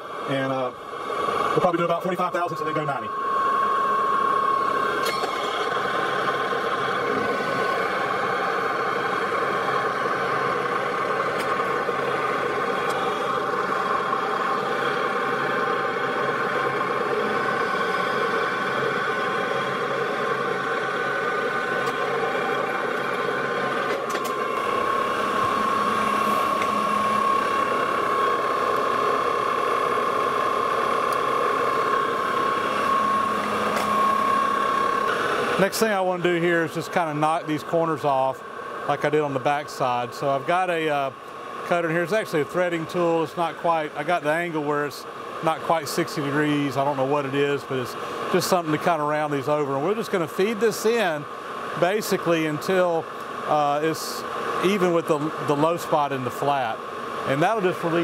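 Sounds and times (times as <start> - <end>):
metal lathe gear whine: 0.0 - 58.0
tool cutting metal: 4.7 - 8.4, 21.6 - 29.5, 31.0 - 35.7.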